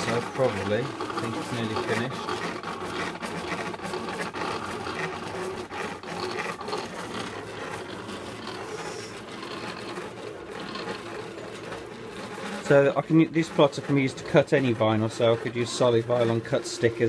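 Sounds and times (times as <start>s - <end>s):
cutting plotter motor whirring: 0.0s - 17.0s.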